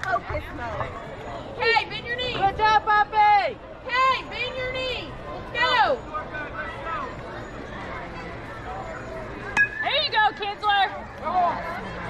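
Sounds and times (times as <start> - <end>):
murmur of outdoor voices: 0.0 - 12.0
metal bat striking ball: 9.6 - 10.2.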